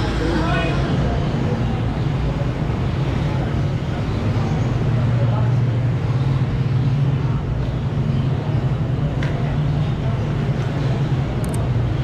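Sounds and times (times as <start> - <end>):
continuous low hum: 0.0 - 12.0
faint voices: 0.0 - 12.0
low rumble of machinery or traffic: 0.0 - 12.0.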